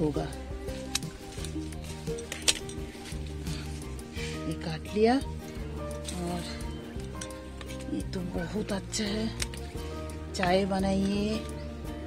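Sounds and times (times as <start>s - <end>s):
background music with held notes: 0.0s - 12.0s
person speaking: 5.9s - 9.6s, 10.2s - 11.6s.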